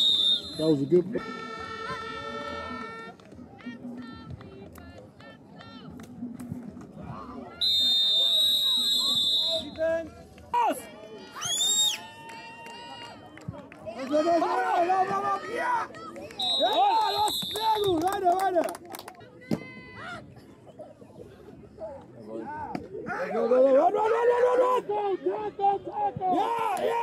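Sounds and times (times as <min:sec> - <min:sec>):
referee's whistle blasts: 0:00.0 - 0:01.6, 0:07.6 - 0:09.8, 0:16.4 - 0:18.0
players and spectators shouting: 0:14.0 - 0:18.3, 0:22.4 - 0:27.0.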